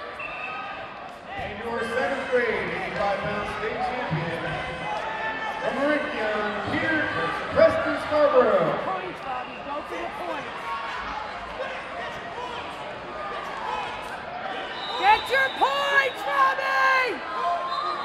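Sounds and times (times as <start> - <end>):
spectators shouting and yelling: 0.0 - 18.0.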